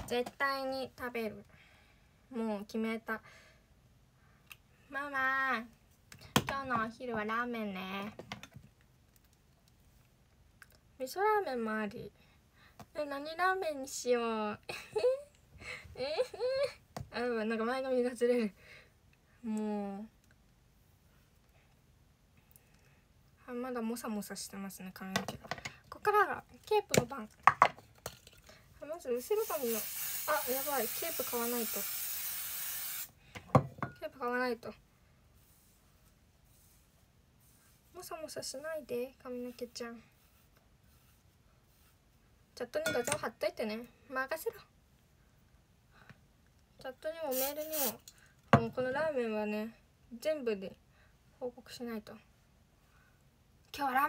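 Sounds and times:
aerosol hairspray hiss: 29.2s - 33.2s, 47.3s - 48.0s.

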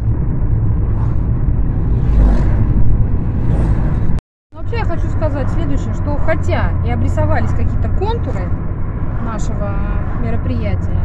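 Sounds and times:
road and engine noise in car: 0.0s - 11.0s.

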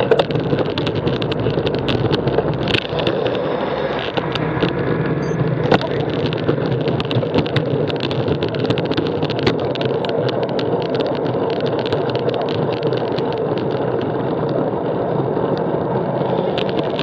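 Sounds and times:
wind noise: 0.0s - 17.0s.

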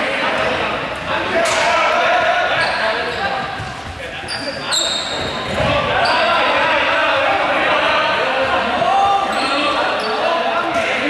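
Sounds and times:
balls bouncing on court floor: 2.5s - 6.1s
short high squeaks: 4.3s - 5.4s
young players shouting: 5.2s - 11.0s.

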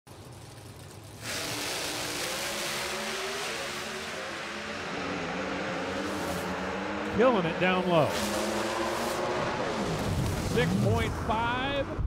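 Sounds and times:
race car engine at full throttle: 0.2s - 12.0s.

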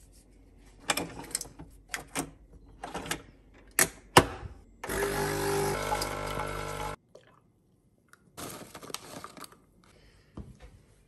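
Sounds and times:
coffee machine pump hum: 4.9s - 7.0s.

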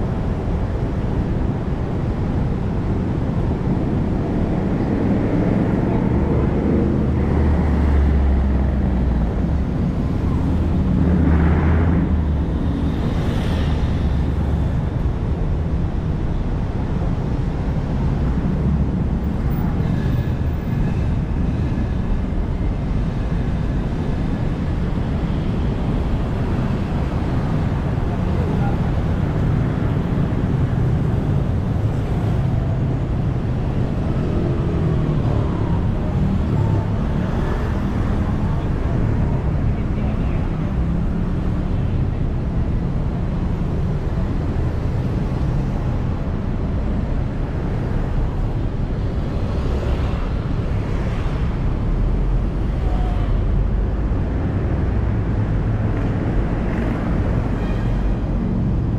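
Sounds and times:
passing vehicle rumble: 0.0s - 58.9s
road traffic: 0.0s - 58.9s.

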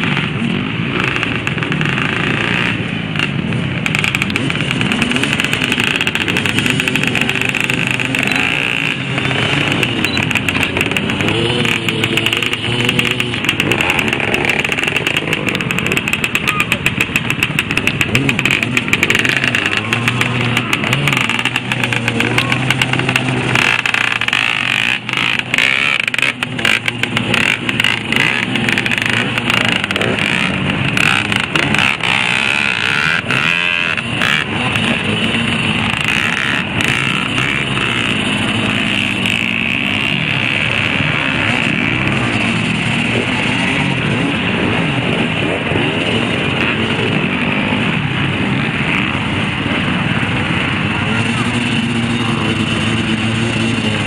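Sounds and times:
dirt bike engines revving hard: 0.0s - 54.0s.

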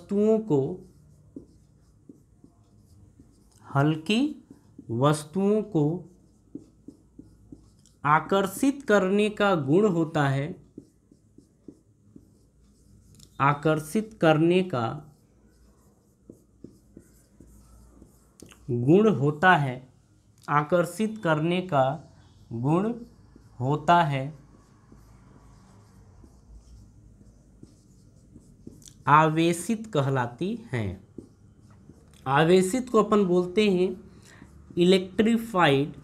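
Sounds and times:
marker pen writing on whiteboard: 0.0s - 36.0s.

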